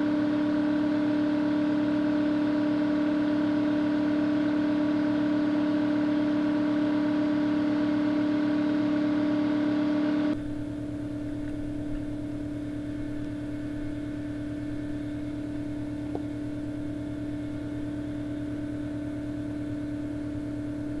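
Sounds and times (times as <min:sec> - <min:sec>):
air compressor humming: 0:00.0 - 0:21.0.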